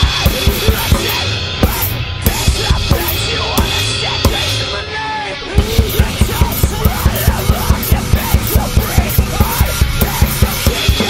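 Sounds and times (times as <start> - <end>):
rock backing track: 0.0 - 11.0.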